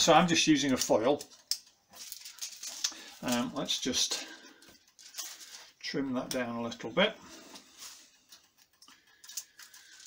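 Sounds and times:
scissors snipping foil: 0.2s - 3.6s, 8.3s - 10.0s.

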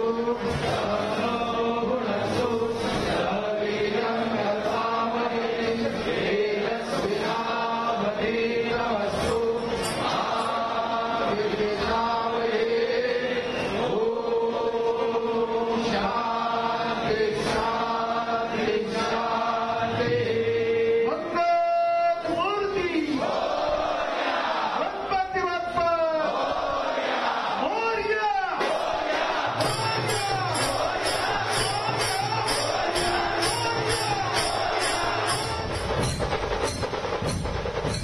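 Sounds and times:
devotional chanting: 0.0s - 36.8s
short percussive strikes: 28.6s - 38.0s.

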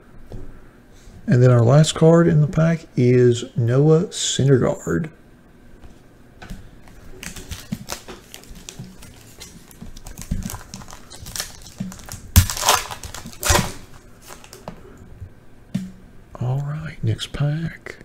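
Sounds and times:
foil wrapper crinkling: 6.8s - 14.8s
wrapper ripping: 6.9s - 14.7s.

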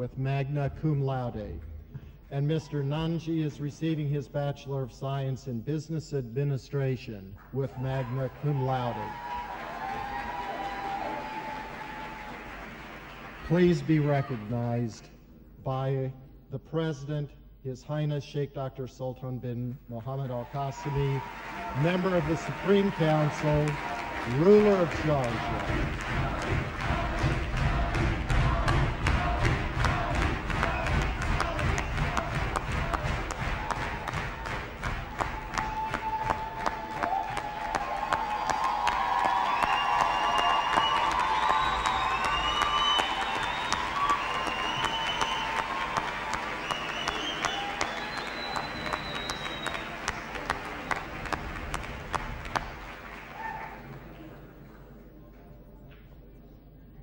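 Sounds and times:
cheers and shouts: 7.7s - 12.5s, 20.4s - 50.6s
audience applauding: 7.7s - 14.7s, 20.2s - 54.5s.

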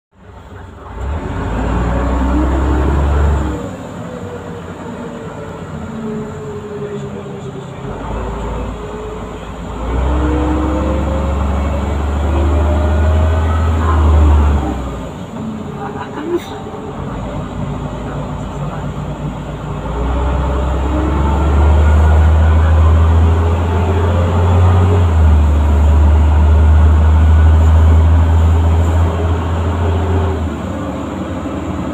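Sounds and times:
bus diesel engine rumble: 0.2s - 31.9s.

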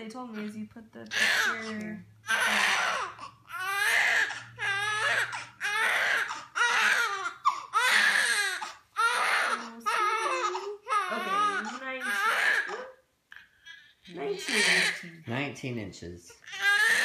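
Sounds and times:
newborn baby crying: 1.1s - 15.2s, 16.3s - 17.0s.

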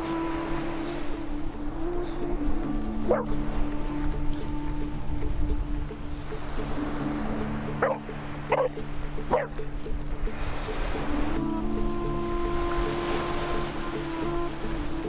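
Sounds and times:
background music with held notes: 0.0s - 15.0s
puppy yipping: 3.1s - 3.4s, 7.8s - 9.6s.

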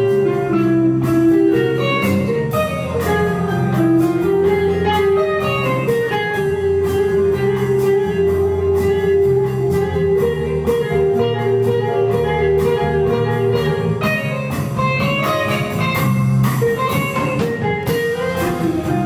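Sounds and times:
drum kit: 0.0s - 19.0s
electric bass: 0.0s - 19.0s
electric guitar: 0.0s - 19.0s.

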